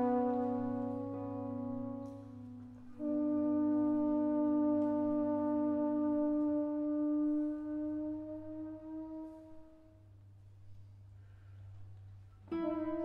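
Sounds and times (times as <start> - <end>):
trombone holding a long note: 0.0 - 10.2, 12.5 - 13.0.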